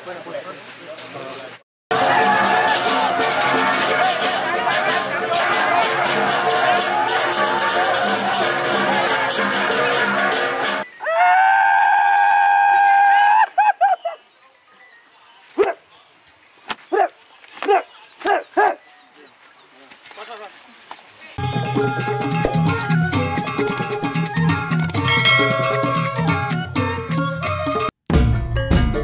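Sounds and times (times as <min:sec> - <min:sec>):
long high held cry: 0:01.9 - 0:09.8, 0:11.0 - 0:13.8
gamelan music: 0:01.9 - 0:10.8, 0:21.4 - 0:27.9.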